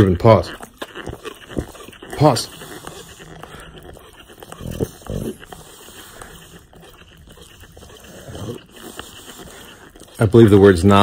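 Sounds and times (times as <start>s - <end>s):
dog grunting: 0.0s - 11.0s.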